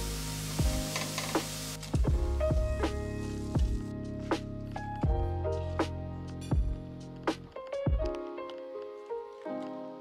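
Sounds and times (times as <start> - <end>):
food sizzling in a frying pan: 0.0 - 2.1
background music: 0.0 - 10.0.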